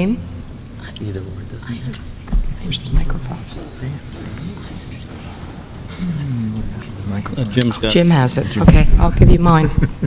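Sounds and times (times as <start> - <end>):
indistinct low talk: 0.7 - 9.9.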